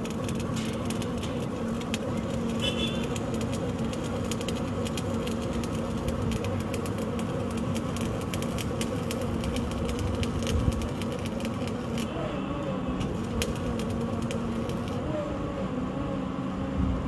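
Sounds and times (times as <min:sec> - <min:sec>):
rapid clicking and rattling: 0:00.0 - 0:12.1, 0:13.0 - 0:15.0.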